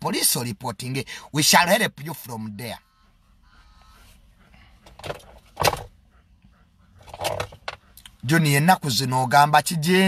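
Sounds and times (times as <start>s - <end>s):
handling noise: 4.8s - 6.0s.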